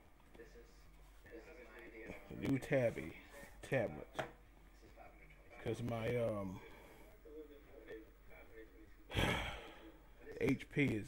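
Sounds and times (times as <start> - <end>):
man sighing into microphone: 9.1 - 9.9.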